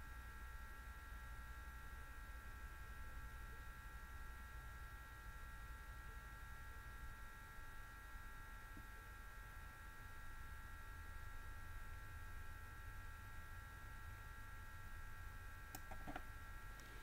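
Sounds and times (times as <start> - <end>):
electrical hum: 0.0 - 17.0.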